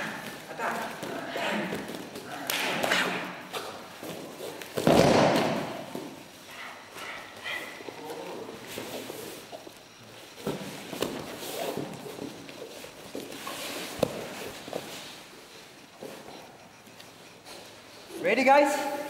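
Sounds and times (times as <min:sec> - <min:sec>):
bodies thudding on foam mats: 0:02.9 - 0:06.2.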